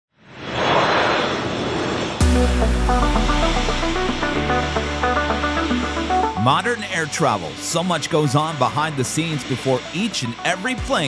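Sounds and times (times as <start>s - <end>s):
jet airliner engine rush: 0.2s - 10.7s.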